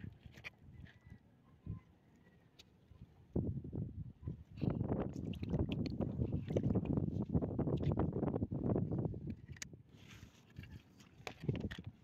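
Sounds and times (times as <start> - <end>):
wind buffeting microphone: 3.2 - 9.8.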